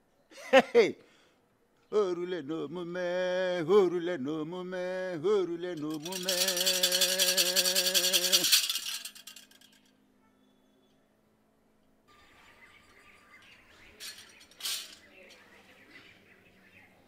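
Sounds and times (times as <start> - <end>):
faint background noise: 0.0 - 17.0
shaken rattles: 5.8 - 9.9, 14.0 - 15.1.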